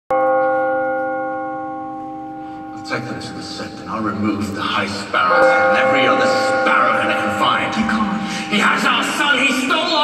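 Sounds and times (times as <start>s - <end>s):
bell stroke: 5.2s - 10.0s.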